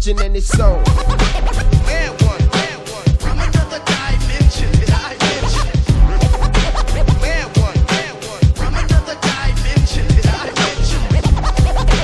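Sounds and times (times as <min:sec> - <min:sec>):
hip hop drum loop: 0:00.0 - 0:12.0
turntable scratching: 0:00.0 - 0:12.0.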